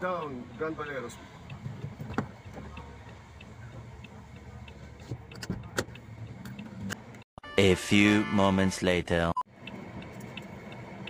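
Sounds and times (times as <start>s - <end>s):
car engine idling: 0.0s - 7.2s
light regular ticking: 0.0s - 7.3s, 9.5s - 11.0s.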